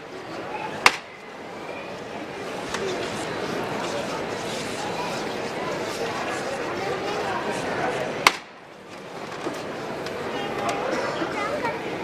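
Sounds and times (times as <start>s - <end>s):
crowd murmuring: 0.0s - 12.0s
sharp wooden knock: 0.8s - 1.1s, 8.2s - 8.6s.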